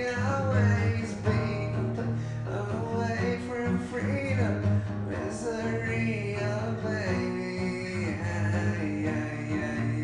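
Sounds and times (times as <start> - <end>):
song with guitar and singing: 0.0 - 10.0.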